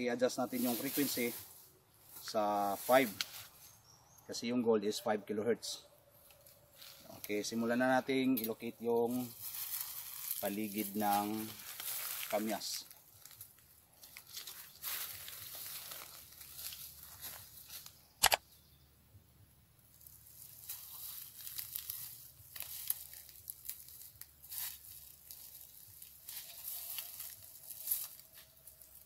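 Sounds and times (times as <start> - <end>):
footsteps crunching through dry leaves: 0.4 - 4.0, 6.2 - 7.6, 9.0 - 18.1, 19.8 - 29.0
sharp click: 18.2 - 18.4.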